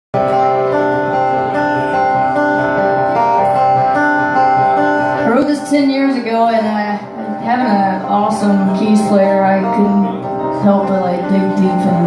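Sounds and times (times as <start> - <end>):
acoustic guitar chords: 0.2 - 12.0
keyboard chords: 0.2 - 12.0.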